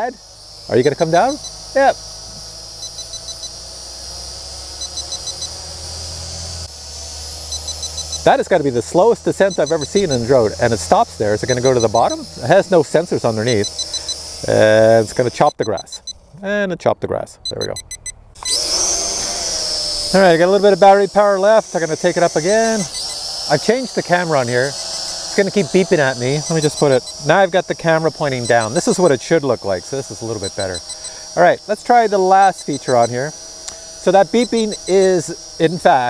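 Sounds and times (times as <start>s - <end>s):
propellers hissing: 0.0s - 16.0s, 18.4s - 36.0s
drone hovering whir: 0.0s - 16.4s, 17.5s - 36.0s
short high warning beeps: 2.8s - 3.6s, 4.8s - 5.6s, 7.5s - 8.6s, 9.4s - 12.3s, 13.2s - 16.2s, 17.4s - 18.7s, 22.4s - 23.2s, 24.3s - 27.5s, 28.3s - 29.2s, 30.3s - 31.5s, 32.1s - 33.3s, 34.4s - 35.3s.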